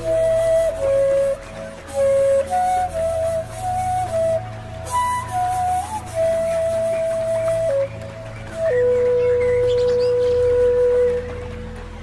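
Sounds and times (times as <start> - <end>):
flute holding long note: 0.0 - 12.0.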